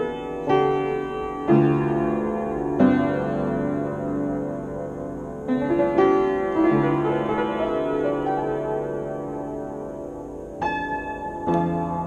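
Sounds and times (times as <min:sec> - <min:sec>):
slow piano improvisation: 0:00.0 - 0:12.0.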